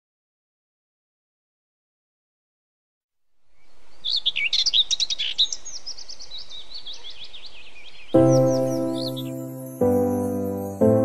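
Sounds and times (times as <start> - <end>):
birds chirping: 3.5 - 11.0.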